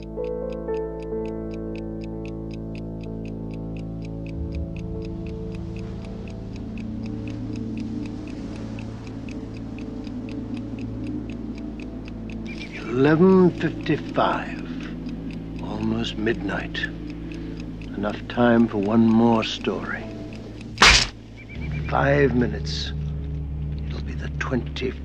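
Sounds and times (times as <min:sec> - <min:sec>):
pocket watch ticking: 0:00.0 - 0:21.8
low droning music: 0:00.0 - 0:25.0
low pulsing note: 0:04.1 - 0:07.2.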